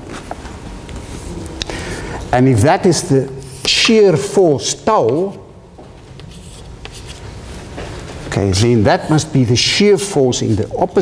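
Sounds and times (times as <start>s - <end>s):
chalk writing on a chalkboard: 5.0s - 5.5s, 6.2s - 7.3s.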